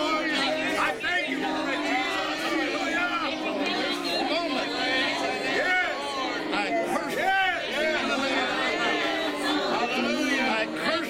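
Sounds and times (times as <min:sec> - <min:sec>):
people praying aloud: 0:00.0 - 0:11.0.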